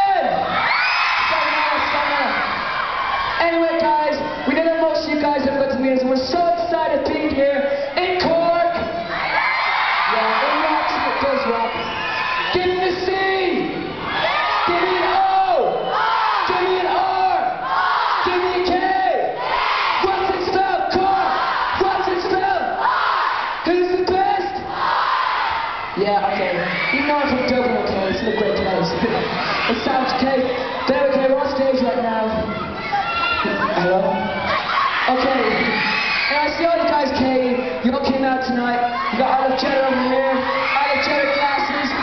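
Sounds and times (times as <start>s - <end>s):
crowd of fans screaming: 0.0s - 4.6s, 8.8s - 23.7s, 24.3s - 37.9s, 38.6s - 42.0s
crowd chanting held notes: 24.7s - 25.8s.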